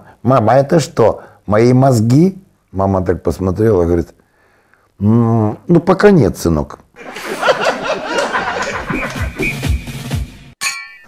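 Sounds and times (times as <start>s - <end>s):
ding: 10.6s - 11.0s.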